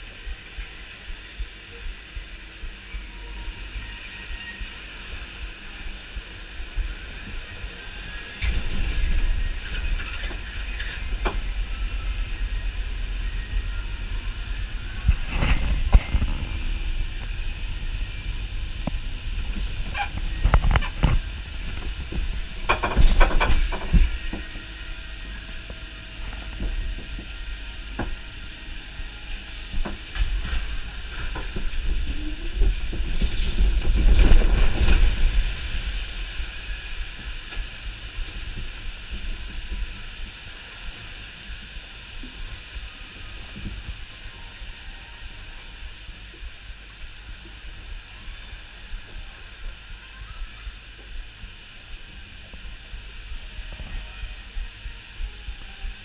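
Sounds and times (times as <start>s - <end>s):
boat ride rumble: 0.0s - 56.0s.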